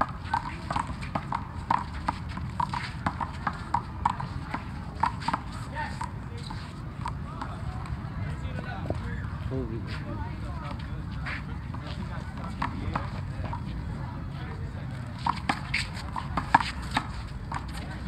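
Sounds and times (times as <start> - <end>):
voices: 0.0 - 18.0.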